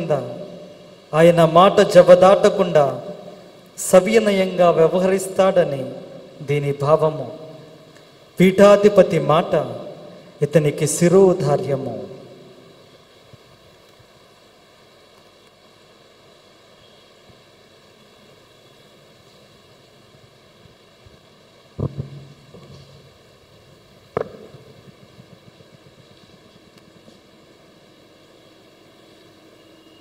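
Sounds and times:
room tone hiss: 0.0s - 30.0s
microphone thump: 21.8s - 23.0s, 24.1s - 26.0s.

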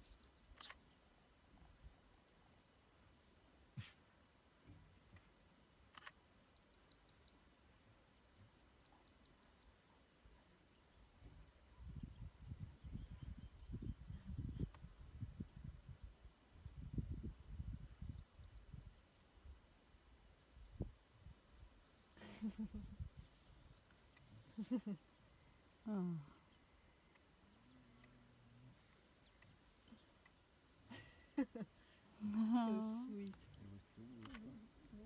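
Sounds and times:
small bird singing: 0.0s - 1.0s, 4.6s - 35.0s.

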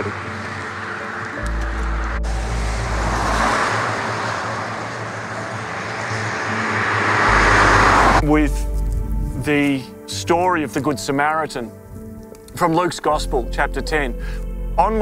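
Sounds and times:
background music with low notes: 0.0s - 15.0s
car tyres hissing on wet road: 2.2s - 8.2s.

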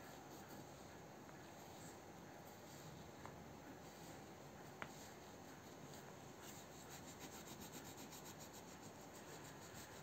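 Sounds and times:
colouring strokes on paper: 0.0s - 10.0s.

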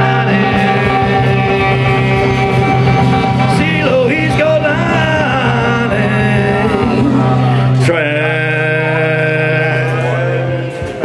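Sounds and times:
blues band playing: 0.0s - 11.0s.

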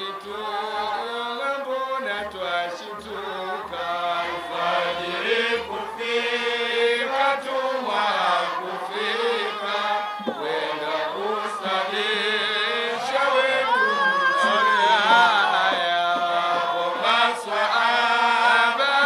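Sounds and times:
men chanting through microphone: 0.0s - 19.0s
low regular beat: 9.6s - 12.2s, 12.9s - 17.1s.

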